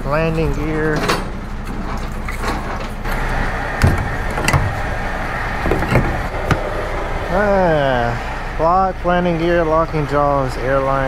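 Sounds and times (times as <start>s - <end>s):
diesel engine idling: 0.0s - 11.0s
metal clanks and knocks: 3.8s - 5.0s, 5.6s - 6.8s.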